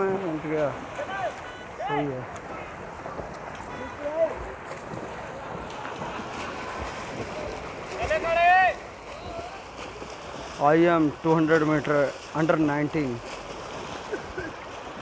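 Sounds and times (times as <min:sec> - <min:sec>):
crowd noise: 0:00.0 - 0:11.7
swimmers splashing in a pool: 0:00.0 - 0:15.0.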